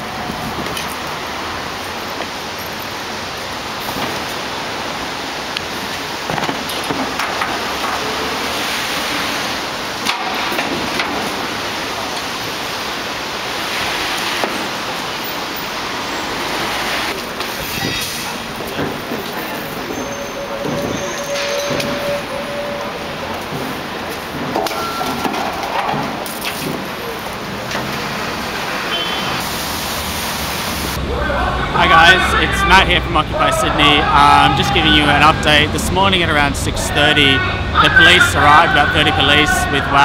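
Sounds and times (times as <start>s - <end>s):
passing traffic: 0.0s - 40.0s
knocks and clatter: 23.3s - 27.0s.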